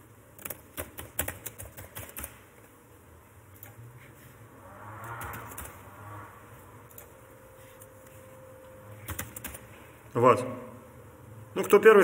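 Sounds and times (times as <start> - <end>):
typing on computer keyboard: 0.4 - 2.4, 9.0 - 9.7.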